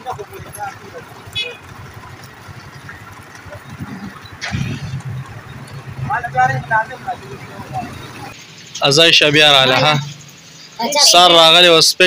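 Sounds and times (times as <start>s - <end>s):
auto-rickshaw engine running: 0.0s - 12.0s
outdoor street noise: 0.0s - 12.0s.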